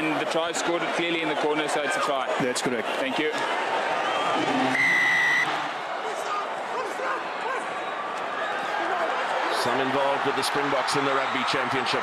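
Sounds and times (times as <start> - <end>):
stadium crowd hubbub: 0.0 - 12.0
referee's whistle blast: 4.5 - 5.5.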